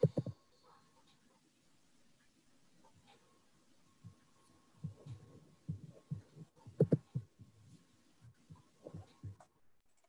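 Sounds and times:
faint steady tone: 0.0 - 10.0
low muffled thumps: 4.8 - 7.6.

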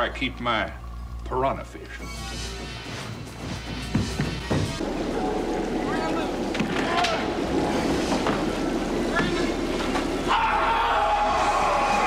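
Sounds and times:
bubbling hot tub water: 4.8 - 12.0.

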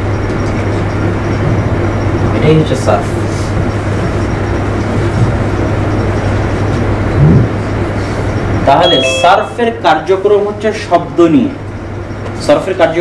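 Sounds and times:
constant low hum: 0.0 - 13.0.

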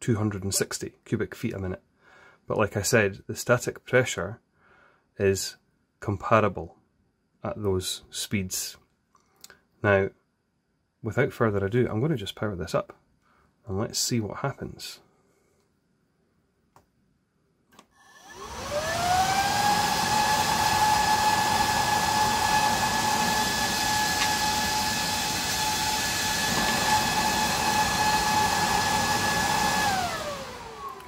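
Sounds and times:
fan motor whine: 18.2 - 31.0.

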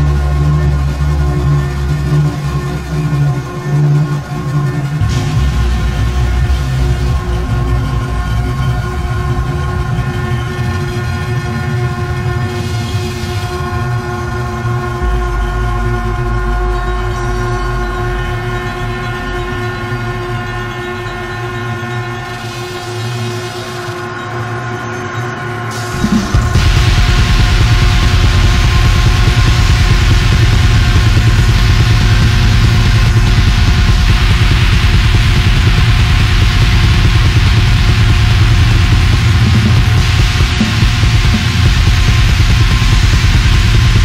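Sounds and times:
dark electronic drone music: 0.0 - 44.0.

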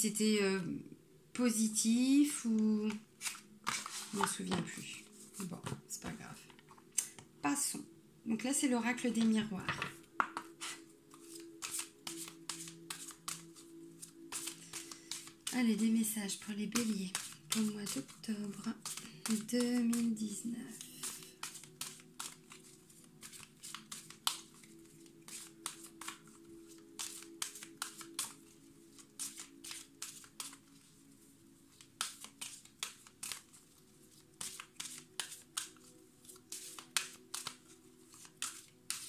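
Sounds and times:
cards being shuffled by hand: 2.8 - 7.3, 9.1 - 39.0.

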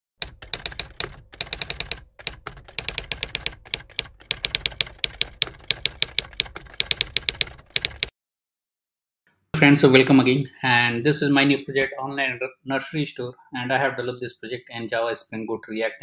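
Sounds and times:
typewriter key clacks: 0.2 - 8.1.

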